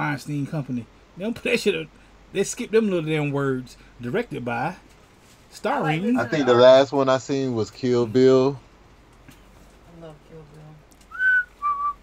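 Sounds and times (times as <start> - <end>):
person whistling notes: 11.1 - 12.0.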